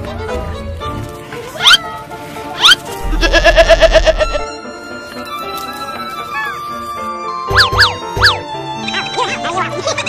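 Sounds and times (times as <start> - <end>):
background music: 0.0 - 10.0
goat bleating: 3.0 - 4.4.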